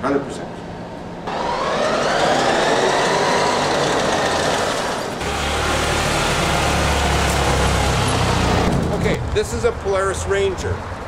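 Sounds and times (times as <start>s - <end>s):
electric motor whining: 1.2s - 8.8s
vehicle engine rumbling: 1.3s - 11.0s.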